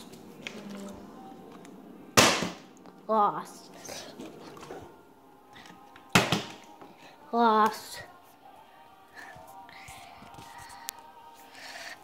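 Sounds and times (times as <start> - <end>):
plastic bottle smacking floor: 2.2 - 2.7, 6.1 - 6.9.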